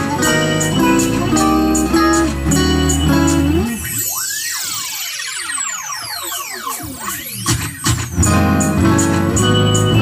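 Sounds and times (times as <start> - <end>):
electric guitar pitch sweeps: 0.0 - 10.0.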